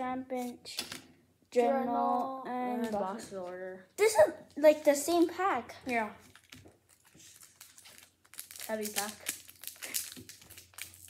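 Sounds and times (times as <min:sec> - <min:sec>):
foil pack crinkling: 0:06.2 - 0:11.0.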